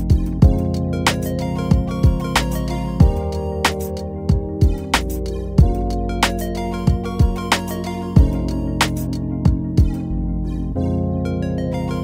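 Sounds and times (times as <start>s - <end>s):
music with steady beat and chords: 0.0s - 12.0s.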